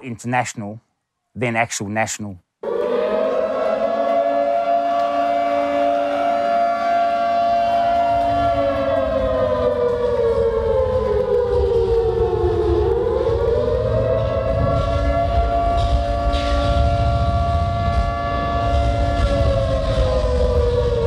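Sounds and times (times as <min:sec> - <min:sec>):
air-raid siren wailing: 0:02.6 - 0:21.0.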